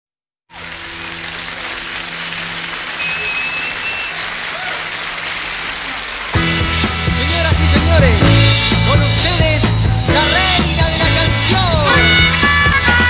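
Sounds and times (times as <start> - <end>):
audience applause: 0.5 - 13.0
high whistle-like tone: 3.0 - 4.2.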